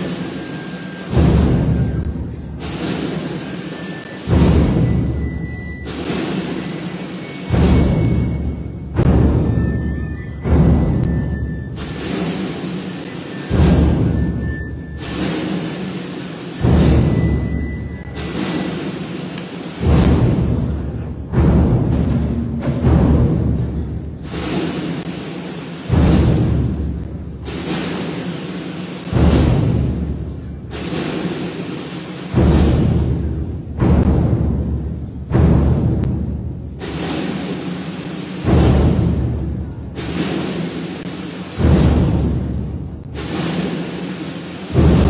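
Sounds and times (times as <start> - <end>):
band playing funeral march: 0.0 - 20.2
deep drums rolling and booming: 0.0 - 45.0.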